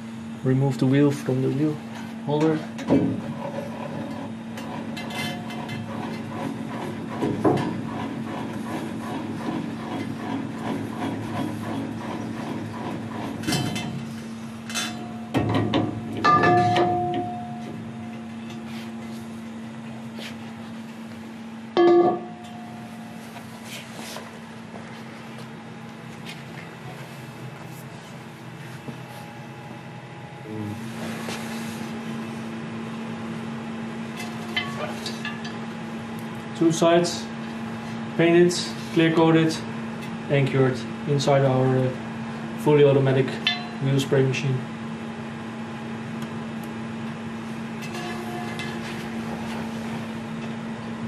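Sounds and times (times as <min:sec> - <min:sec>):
steady low hum: 0:00.0 - 0:51.0
metal wheel clanking on holder: 0:14.7 - 0:17.8, 0:34.2 - 0:35.6, 0:43.4 - 0:43.9, 0:47.8 - 0:49.1
ringing metal clanks: 0:16.2 - 0:17.8, 0:21.8 - 0:22.8, 0:34.5 - 0:35.5, 0:43.4 - 0:43.9.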